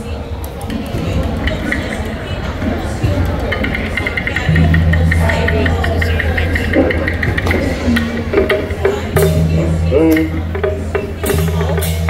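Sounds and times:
crowd noise: 0.0 - 12.0
fast ticking beat: 3.0 - 12.0
music over loudspeakers: 3.6 - 12.0.

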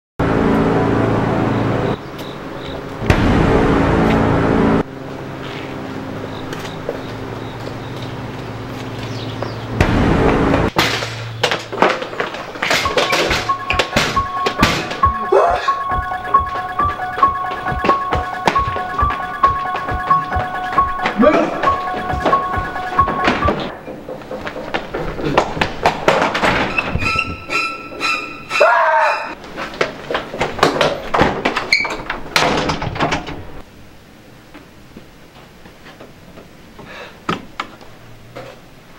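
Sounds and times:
quick percussive beat music: 12.7 - 25.6
wooden door banging shut: 31.1 - 33.4.

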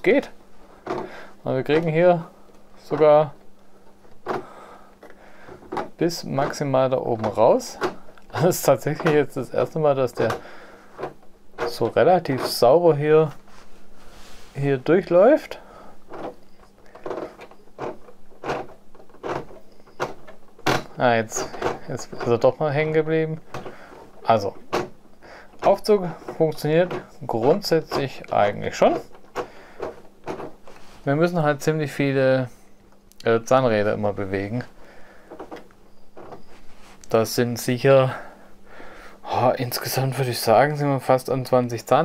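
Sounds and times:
plastic gears rubbing and knocking: 5.6 - 13.0, 16.0 - 25.0, 25.6 - 30.9.

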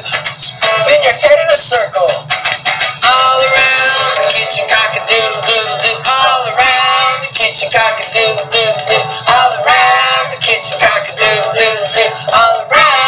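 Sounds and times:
steady beat: 0.0 - 13.0.

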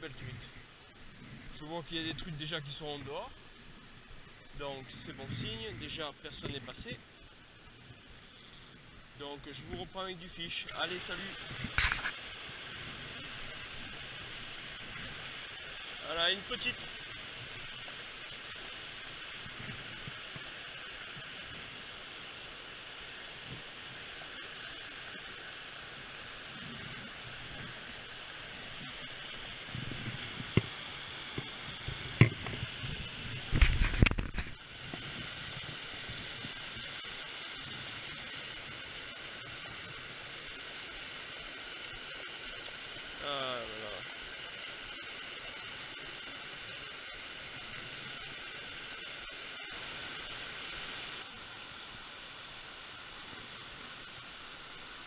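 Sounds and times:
mountain stream rushing: 9.0 - 55.0.

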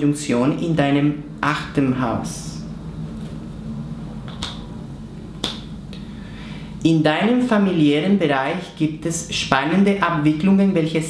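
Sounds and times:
man speaking: 0.0 - 2.7
faint low hum: 0.0 - 11.0.

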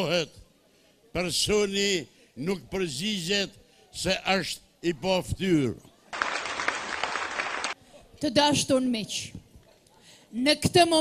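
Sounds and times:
audience applauding: 6.1 - 7.8.

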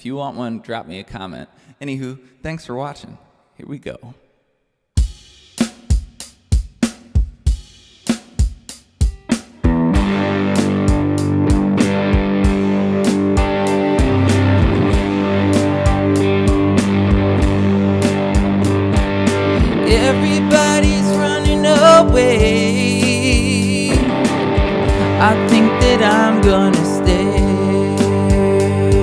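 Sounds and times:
programmed drum beat: 5.0 - 29.0
electric guitar chords: 9.1 - 29.0
low bass: 9.7 - 29.0.

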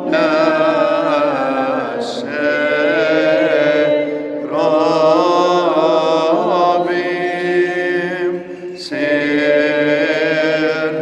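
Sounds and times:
priest chanting: 0.0 - 11.0.

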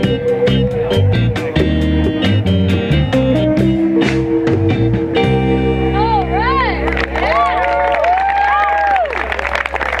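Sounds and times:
audience applause and cheering: 6.8 - 10.0.

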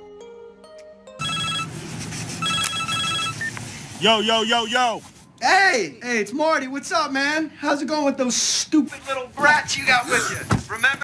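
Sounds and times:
mobile phone ringtone beeping: 1.2 - 1.8, 2.4 - 3.5.

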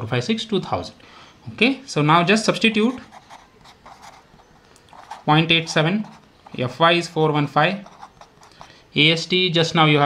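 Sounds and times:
marker scratching on paper: 2.5 - 6.7, 7.6 - 8.8.

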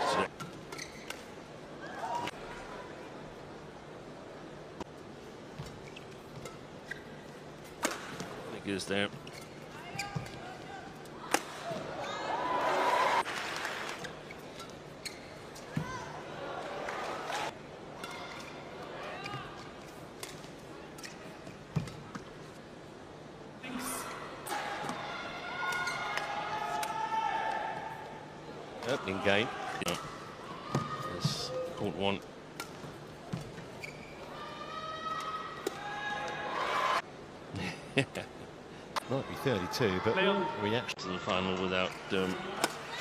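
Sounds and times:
shoes squeaking on court floor: 0.3 - 1.4, 5.5 - 8.4, 9.0 - 11.1, 14.0 - 16.1, 32.6 - 34.4
rackets hitting shuttlecock: 7.8 - 8.3.

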